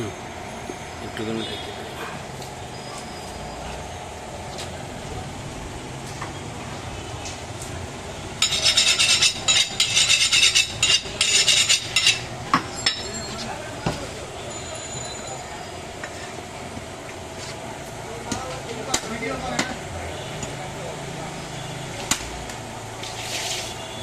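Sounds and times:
market background noise: 0.0s - 24.0s
steel knife rasping and clinking: 8.4s - 13.3s.

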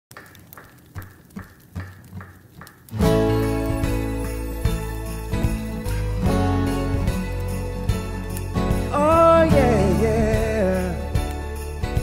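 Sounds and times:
acoustic guitar chord ringing: 3.0s - 12.0s.

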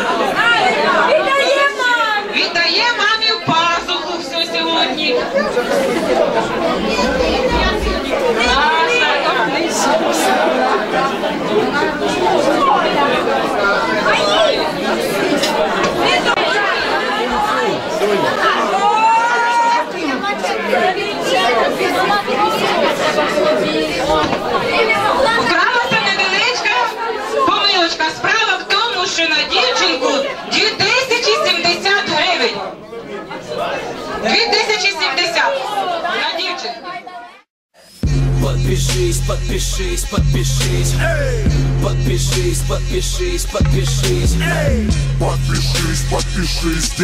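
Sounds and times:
crowd chattering: 0.0s - 47.0s.

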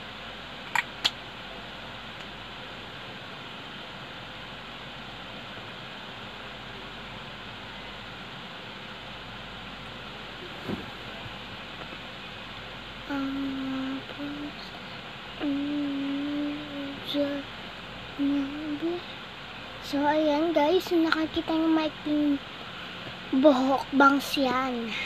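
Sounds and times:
electric fan whirring: 0.0s - 25.0s
person humming: 13.0s - 14.7s, 15.4s - 17.4s, 18.2s - 19.1s.

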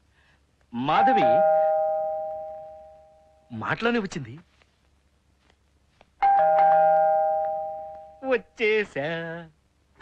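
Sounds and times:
doorbell ding-dong chime: 1.0s - 3.5s, 6.2s - 8.2s.

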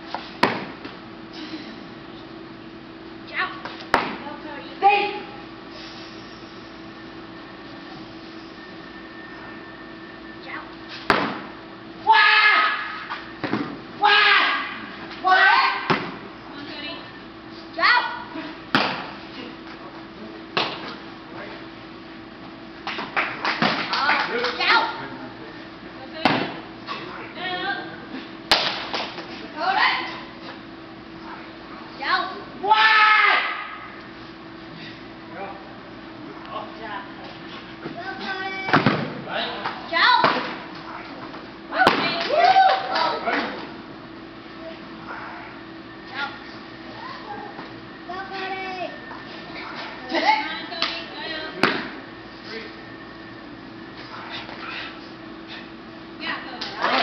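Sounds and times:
voices: 14.0s - 21.8s, 34.9s - 43.8s, 44.4s - 57.0s
sharp smacks of strikes: 28.5s - 29.1s.

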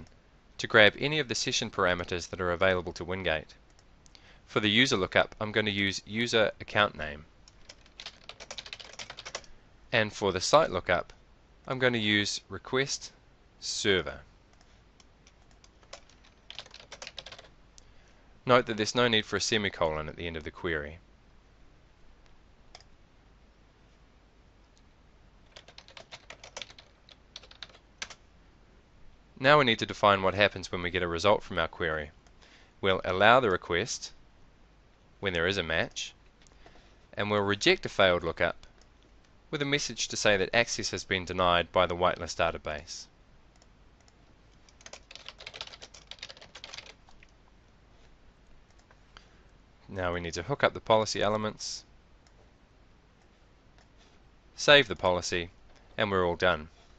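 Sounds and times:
keyboard typing clicks: 7.5s - 9.5s, 14.5s - 17.5s, 25.5s - 28.2s, 43.5s - 47.4s.

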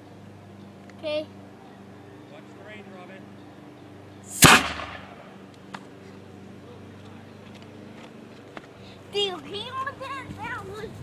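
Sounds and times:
compressed air cannon blast: 4.3s - 5.4s.

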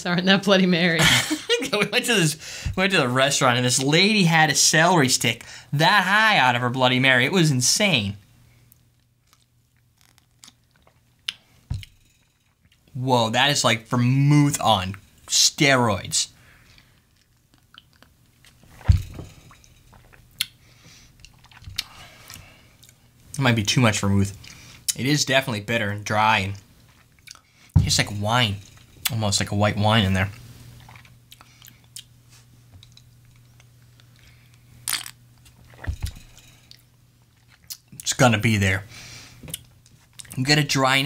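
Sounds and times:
short breath: 2.4s - 2.8s, 38.9s - 39.4s
steady low hum: 10.6s - 41.0s
lip smacks and mouth clicks: 17.2s - 18.6s
man talking: 27.8s - 30.4s, 38.0s - 38.9s, 40.3s - 41.0s
man sipping: 35.5s - 36.8s.

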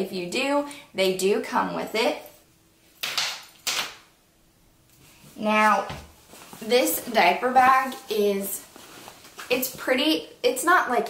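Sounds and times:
clattering rustles of handled things: 5.0s - 9.9s.

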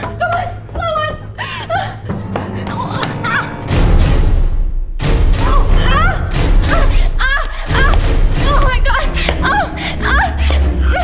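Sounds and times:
woman whimpering and gasping: 1.3s - 3.0s.

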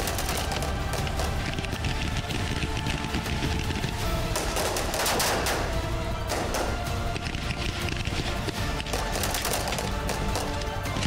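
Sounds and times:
dramatic background music: 0.0s - 11.0s
automatic rifle fire: 4.3s - 5.7s.

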